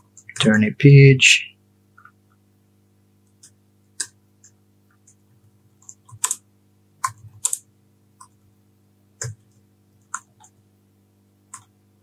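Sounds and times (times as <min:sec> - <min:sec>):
low steady hum: 0:00.0 - 0:12.0
keyboard keystrokes: 0:05.8 - 0:06.4.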